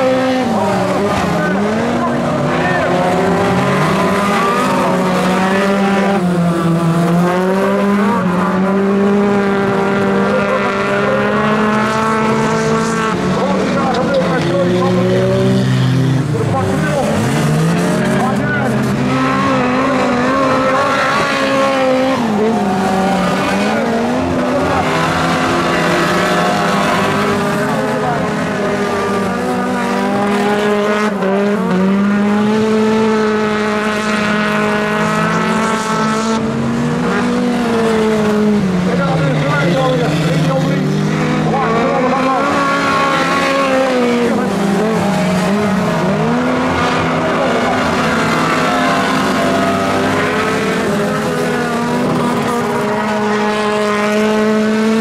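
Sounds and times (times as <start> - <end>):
racing car engines revving: 0.0 - 55.0.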